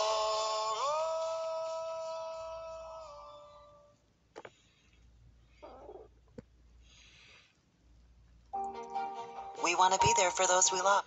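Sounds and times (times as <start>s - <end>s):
man singing held note: 0.0s - 4.0s.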